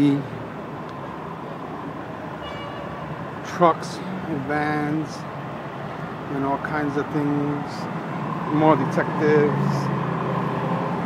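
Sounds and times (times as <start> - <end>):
hum of traffic: 0.0 - 11.0.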